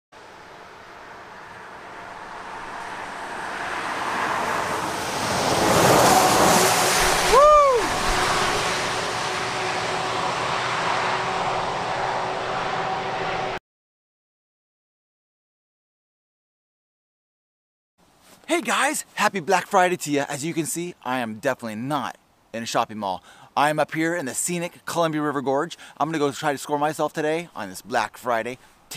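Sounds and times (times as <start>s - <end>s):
outdoor rushing noise: 0.2s - 13.6s
short rising and falling tone: 0.7s - 13.6s.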